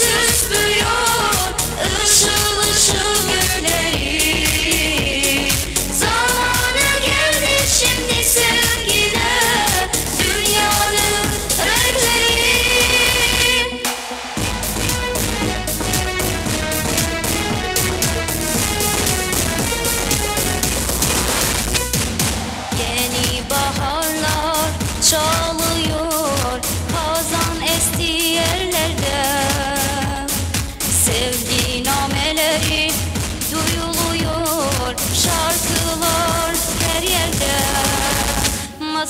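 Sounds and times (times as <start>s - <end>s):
girl singing with vibrato: 0.0s - 13.9s, 22.7s - 39.0s
backing track with drum beat: 0.0s - 38.7s.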